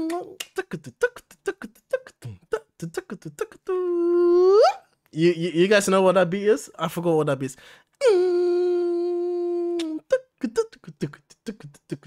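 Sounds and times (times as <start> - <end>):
person humming a long note: 8.0 - 10.2.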